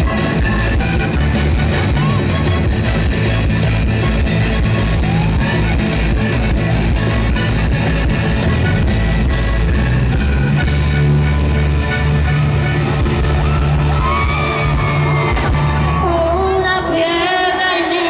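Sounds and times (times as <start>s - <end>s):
accordion playing: 0.0s - 16.4s
live band music: 0.0s - 17.7s.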